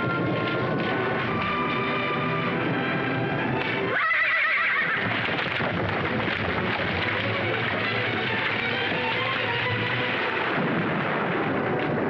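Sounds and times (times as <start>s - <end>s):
film music: 0.0s - 12.0s
horse whinnying: 3.9s - 5.2s.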